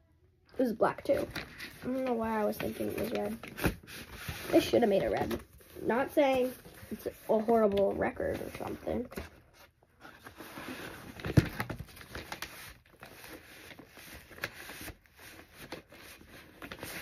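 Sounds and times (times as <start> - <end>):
paper poster rustling and crinkling: 0.6 - 17.0.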